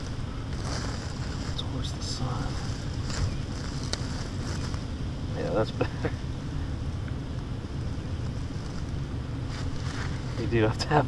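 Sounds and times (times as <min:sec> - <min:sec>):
wind noise on microphone: 0:00.0 - 0:05.2.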